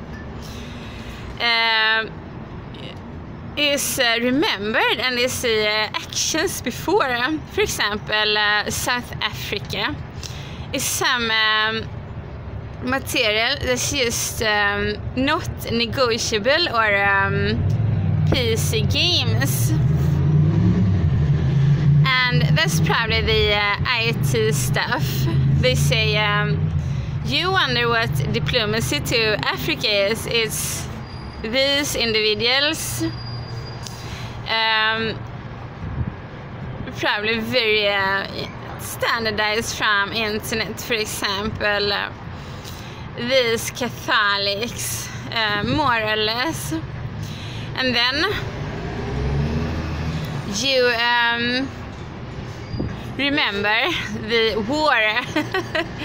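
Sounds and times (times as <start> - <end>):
vehicle engine rumbling: 0.0 - 56.0.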